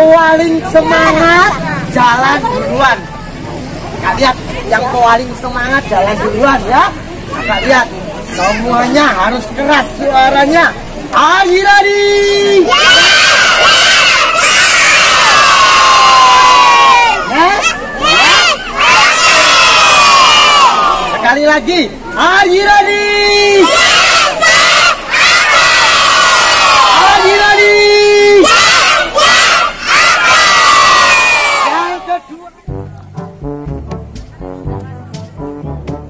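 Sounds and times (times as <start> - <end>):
children shouting a cheer: 12.6 - 21.2, 23.6 - 27.5, 28.3 - 32.0.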